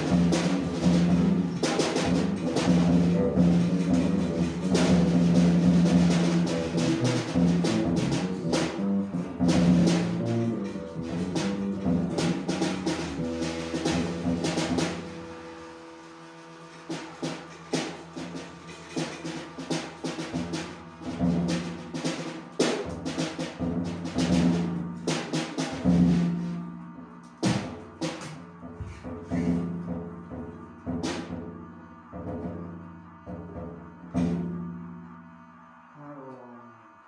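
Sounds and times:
sustained low drone: 0:00.0 - 0:37.0.

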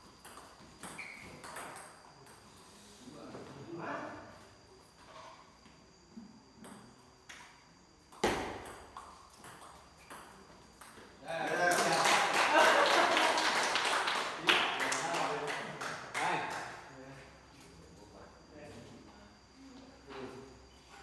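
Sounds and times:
people laughing: 0:11.5 - 0:13.8.

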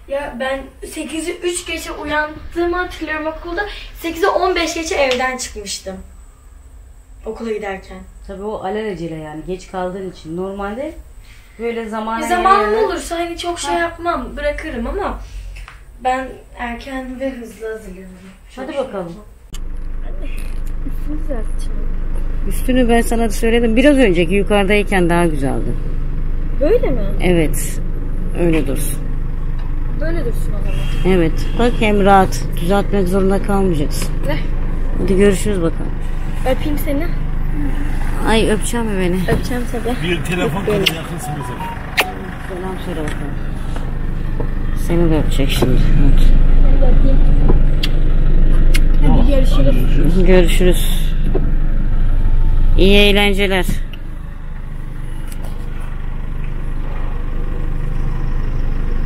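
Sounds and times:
car engine idling: 0:00.0 - 0:07.2, 0:19.6 - 0:59.0.

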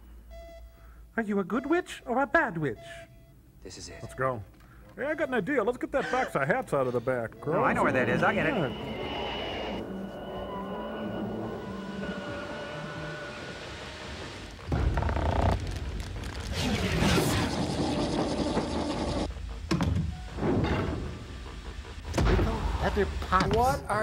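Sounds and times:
mechanical doors thunking and clanking: 0:19.6 - 0:21.4.

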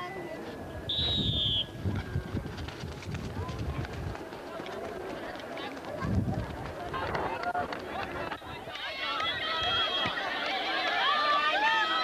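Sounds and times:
outdoor crowd murmur: 0:00.0 - 0:12.0
whistle blown: 0:00.9 - 0:01.8.

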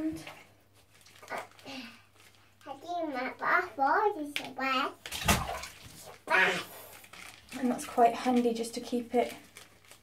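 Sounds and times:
small child speaking: 0:02.6 - 0:05.0, 0:06.2 - 0:06.8
bathwater splash: 0:04.4 - 0:06.7.

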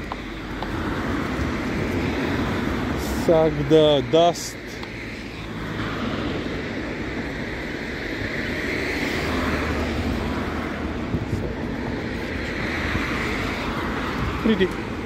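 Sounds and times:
cars driving past: 0:00.0 - 0:15.0.

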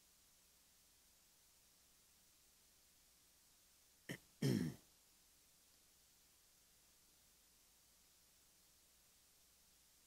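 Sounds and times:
man clearing his throat: 0:04.1 - 0:04.8.

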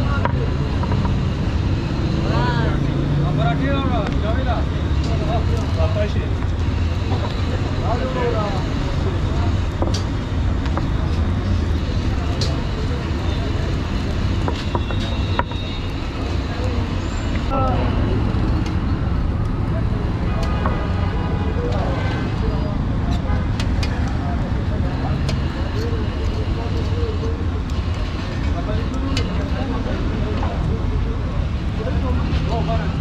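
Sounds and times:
indistinct voices: 0:00.0 - 0:33.0
road traffic rumble: 0:00.0 - 0:33.0
sharp clicks and knocks: 0:00.2 - 0:01.2.

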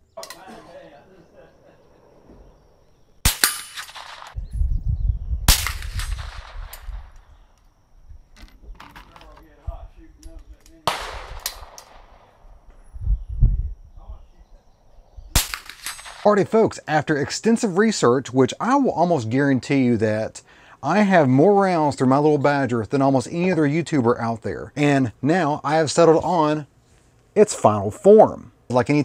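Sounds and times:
suppressed rifle shots: 0:03.2 - 0:04.4, 0:05.5 - 0:07.4, 0:10.7 - 0:12.4, 0:15.3 - 0:16.3.

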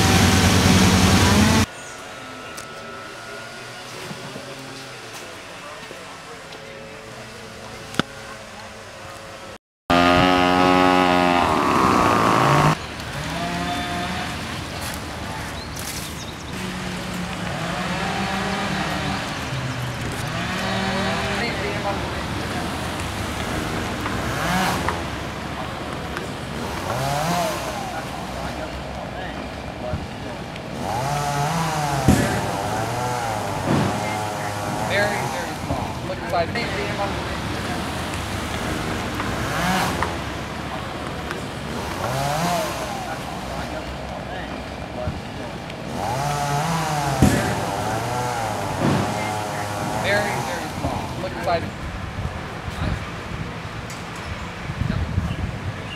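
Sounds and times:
steady background noise: 0:00.0 - 0:55.9
distant chainsaw droning: 0:09.9 - 0:14.4, 0:16.6 - 0:22.8, 0:23.4 - 0:29.6, 0:30.2 - 0:51.6.

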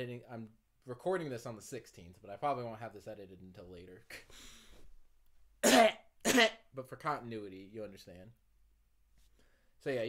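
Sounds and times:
man coughing: 0:05.6 - 0:06.6.

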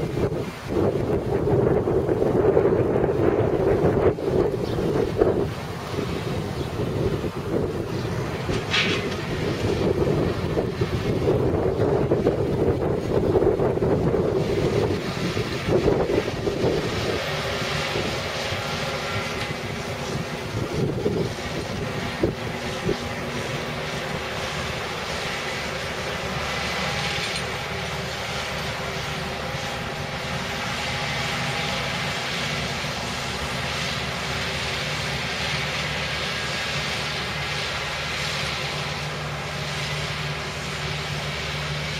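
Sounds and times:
wind buffeting microphone: 0:00.0 - 0:38.7
tractor diesel engine running: 0:00.0 - 0:41.9.

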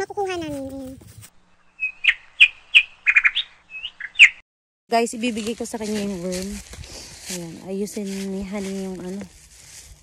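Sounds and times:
bird chirping: 0:01.4 - 0:04.4
bird trill: 0:01.4 - 0:04.4.

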